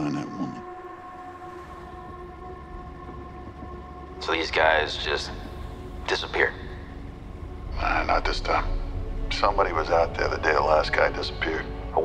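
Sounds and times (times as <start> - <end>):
droning soundtrack tones: 0.0 - 12.0.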